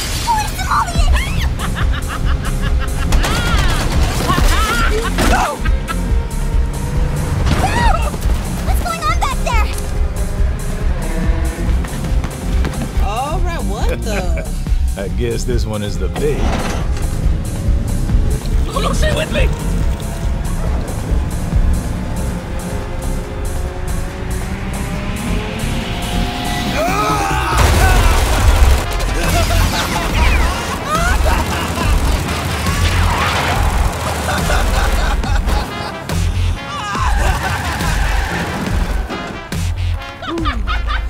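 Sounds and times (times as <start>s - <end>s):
film music: 0.0s - 41.0s
booms and crashes: 27.6s - 35.7s.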